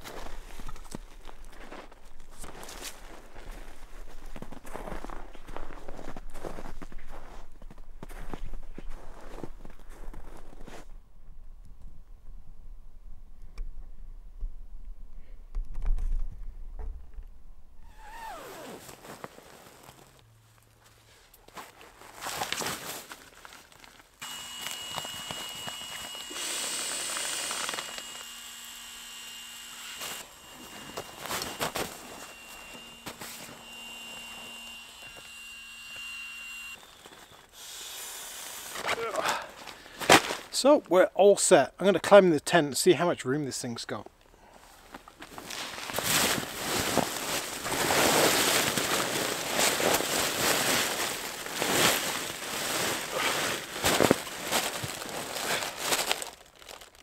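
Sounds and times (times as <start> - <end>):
footsteps in snow: 0.0 - 10.9, 17.9 - 28.5, 29.8 - 36.0, 45.2 - 56.4
nylon camping gear rustling: 17.8 - 28.2, 30.0 - 34.9, 44.6 - 57.0.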